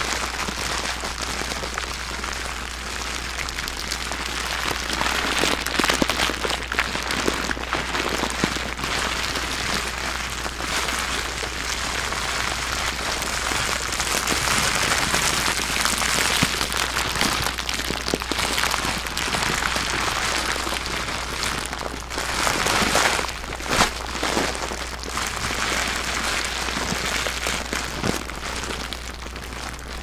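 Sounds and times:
plastic bag crinkling: 0:00.0 - 0:30.0.

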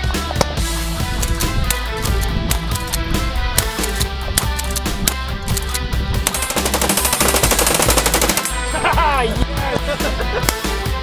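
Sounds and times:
background music: 0:00.0 - 0:11.0
submachine gun automatic fire: 0:06.3 - 0:08.7.

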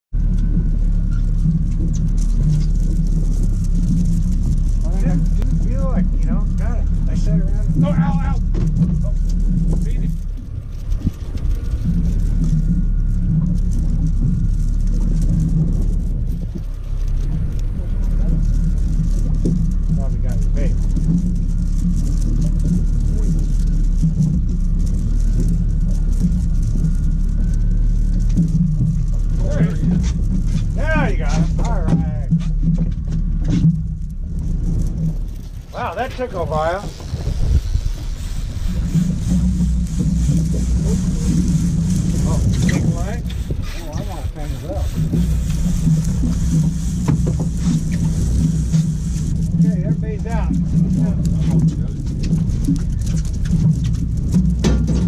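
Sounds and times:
boat engine droning: 0:00.0 - 0:55.0
indistinct voices: 0:00.5 - 0:54.4.

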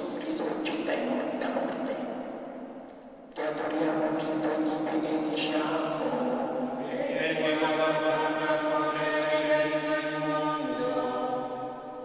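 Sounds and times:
sung chant with held notes: 0:03.5 - 0:12.0.

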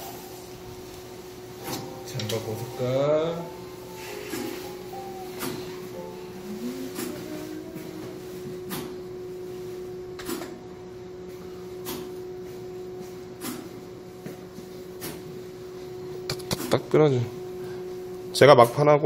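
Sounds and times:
steady electronic hum: 0:00.0 - 0:19.0.

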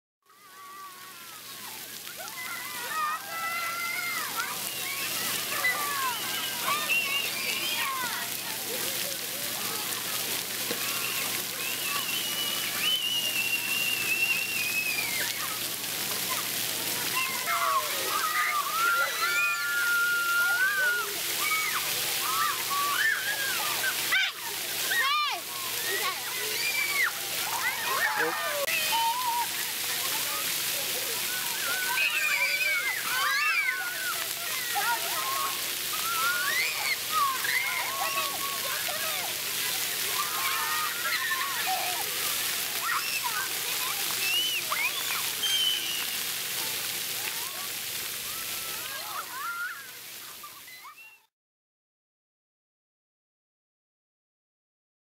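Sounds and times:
water spraying and splashing: 0:00.3 - 0:51.1
children shouting and squealing: 0:00.3 - 0:51.3.

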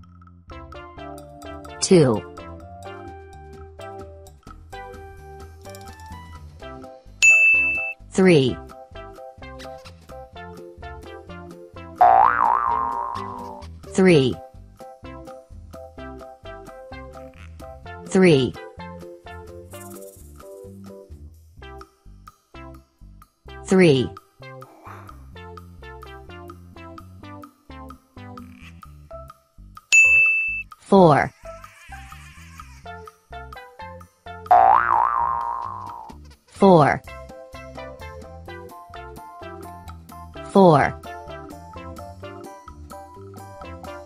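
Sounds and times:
children's background music: 0:00.1 - 0:30.2, 0:30.8 - 0:44.0
cartoon boing sound effect: 0:12.0 - 0:13.7, 0:34.5 - 0:36.1.

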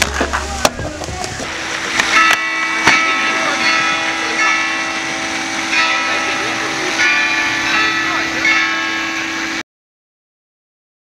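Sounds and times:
church bells ringing: 0:01.4 - 0:09.6.

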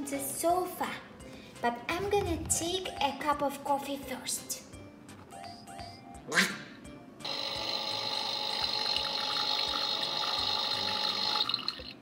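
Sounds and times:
water-like pouring noise: 0:08.6 - 0:12.0.

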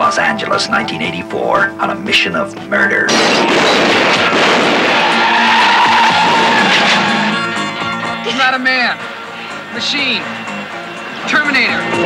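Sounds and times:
car tyres squealing: 0:04.2 - 0:08.5.

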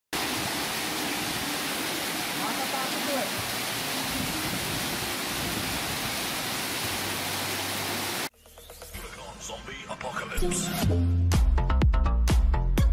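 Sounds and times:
heavy rain pouring: 0:00.1 - 0:08.3.

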